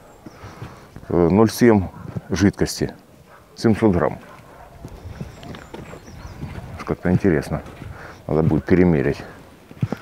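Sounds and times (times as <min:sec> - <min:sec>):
footsteps crunching on leaves: 0:04.9 - 0:10.0.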